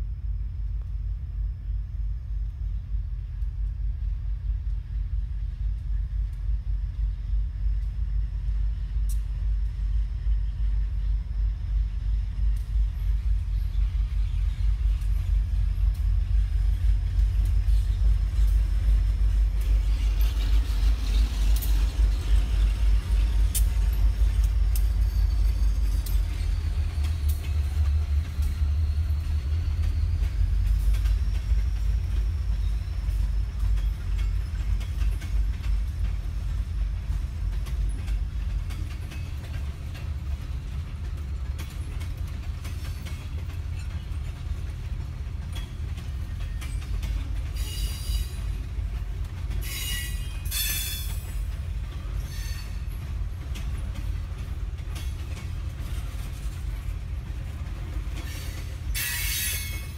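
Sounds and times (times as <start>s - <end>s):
boxcars rolling on rails: 0.0s - 59.9s
diesel locomotive rumble: 0.0s - 59.9s.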